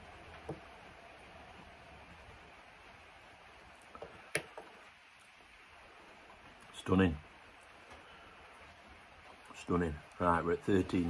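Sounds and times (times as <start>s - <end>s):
faint steady hiss: 0.0s - 11.0s.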